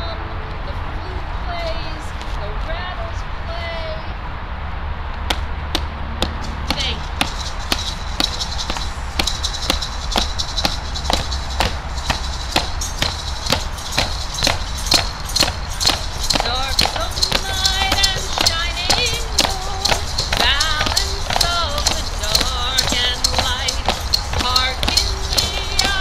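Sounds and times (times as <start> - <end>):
hand percussion beat: 5.8 - 26.0
voices singing: 6.2 - 26.0.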